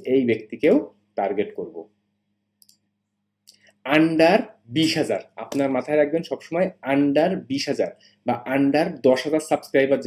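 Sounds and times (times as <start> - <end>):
faint electrical hum: 0.0 - 10.0
computer mouse click: 2.6 - 2.9.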